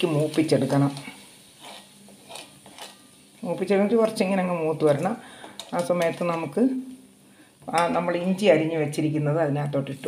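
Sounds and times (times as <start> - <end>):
metal spoon stirring simmering sauce: 0.7 - 3.1
person speaking: 3.4 - 6.9, 7.7 - 10.0.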